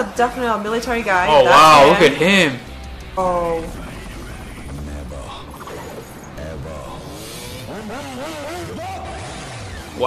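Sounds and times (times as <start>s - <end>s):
motorcycle engine revving: 2.6s - 10.0s.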